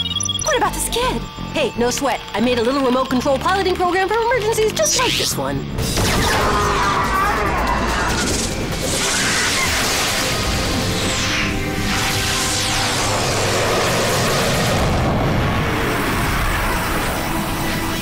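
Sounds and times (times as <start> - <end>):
cartoon background music: 0.0 - 14.3
booming sound effects: 5.8 - 11.0.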